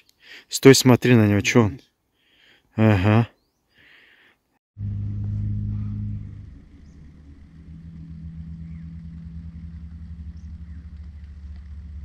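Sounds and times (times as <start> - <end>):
held tone: 4.8 - 11.0
ufo droning hum: 4.8 - 12.0.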